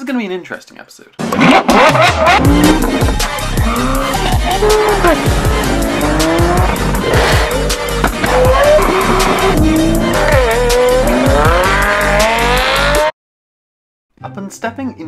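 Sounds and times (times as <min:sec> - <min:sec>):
fast beat music: 0:01.6 - 0:13.1
sports car engines revving: 0:01.8 - 0:13.1.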